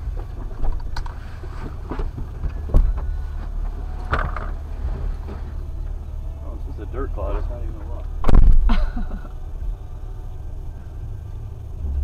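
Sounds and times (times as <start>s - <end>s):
engine idling inside cabin: 0.0s - 12.0s.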